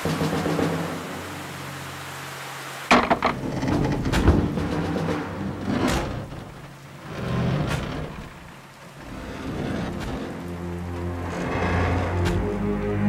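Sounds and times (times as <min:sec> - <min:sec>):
dramatic soundtrack music: 0:00.0 - 0:02.4, 0:03.0 - 0:13.0
steady rain: 0:00.0 - 0:13.0.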